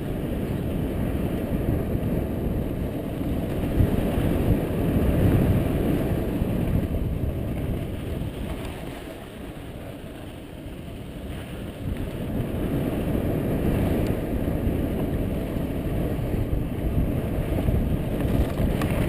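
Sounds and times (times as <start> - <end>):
bike tyres rumbling on dirt: 0.0 - 19.0
wind buffeting microphone: 0.0 - 19.0.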